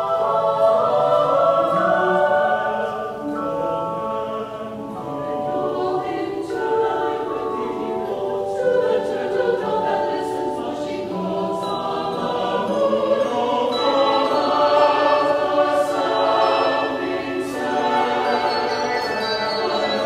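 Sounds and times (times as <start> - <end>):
mixed choir singing held chords: 0.0 - 20.0.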